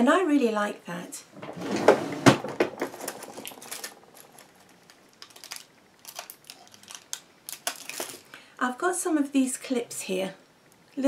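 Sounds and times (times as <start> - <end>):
hair clips clicking and rustling: 3.2 - 8.3.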